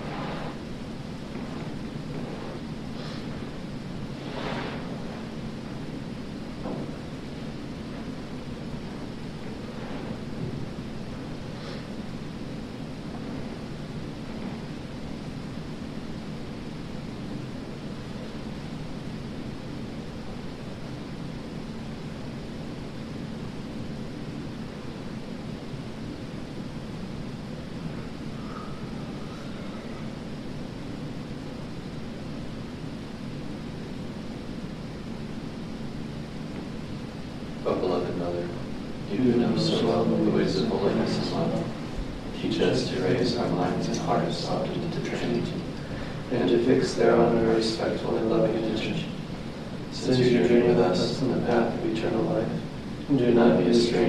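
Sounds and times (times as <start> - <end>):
faint constant hum: 0.0 - 54.0
low rumbling background noise: 0.0 - 54.0.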